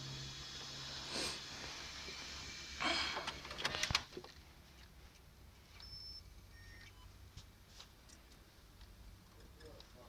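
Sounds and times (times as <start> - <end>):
cd player mechanism whine: 1.6 - 4.1.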